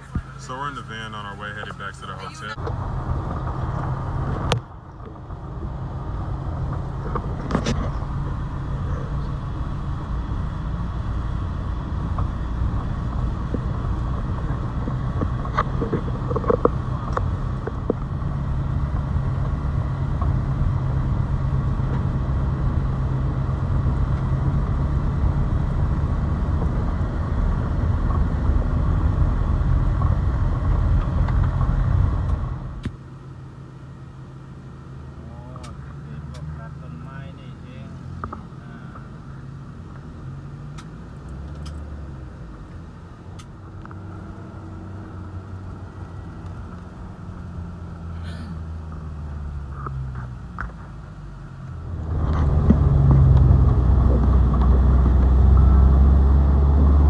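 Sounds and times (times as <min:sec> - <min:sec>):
engine and tyre road rumble: 0:00.0 - 0:57.0.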